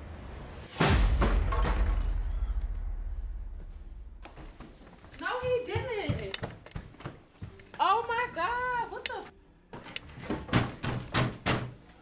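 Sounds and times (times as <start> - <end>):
fist banging on wooden door: 10.5 - 11.8.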